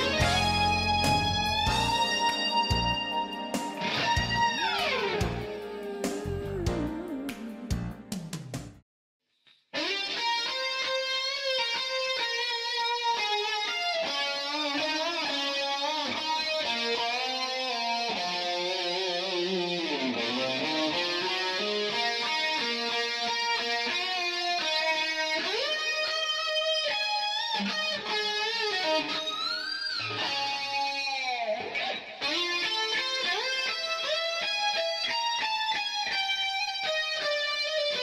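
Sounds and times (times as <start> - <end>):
electric guitar solo: 0.0 - 7.8, 9.7 - 38.0.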